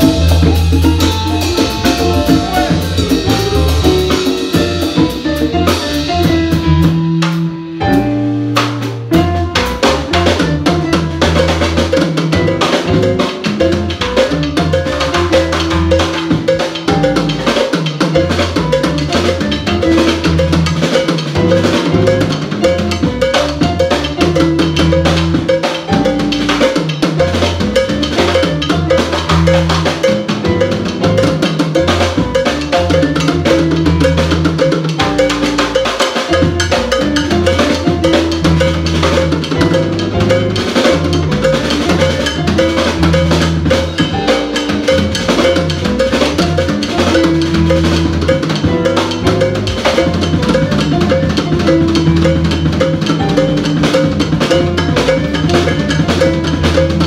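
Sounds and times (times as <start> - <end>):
drum kit: 0.0 - 57.0
electric bass: 0.0 - 57.0
hand percussion: 0.0 - 57.0
keyboard: 0.0 - 57.0.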